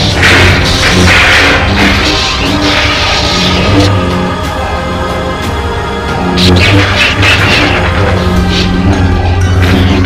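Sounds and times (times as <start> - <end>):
dramatic film score: 0.0 - 10.0
lightsaber electric hum: 0.0 - 10.0.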